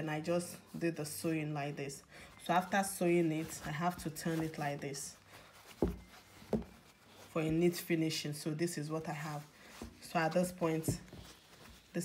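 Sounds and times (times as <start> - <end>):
fabric handling bumps: 2.5 - 8.2, 9.6 - 12.0.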